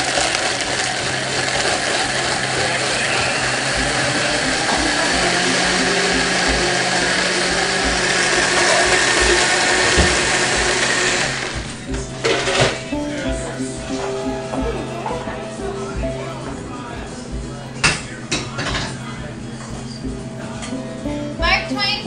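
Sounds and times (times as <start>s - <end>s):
appliance motor whirring: 0.0s - 20.8s.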